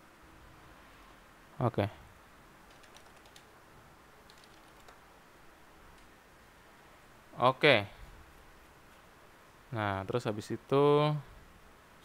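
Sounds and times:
quiet room hiss: 0:00.0 - 0:12.0
computer keyboard typing: 0:02.7 - 0:03.5, 0:04.3 - 0:05.0.

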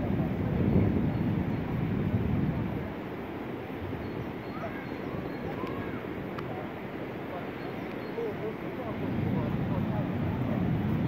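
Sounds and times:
faint voices: 0:00.0 - 0:11.0
wind rumble on microphone: 0:00.0 - 0:11.0.

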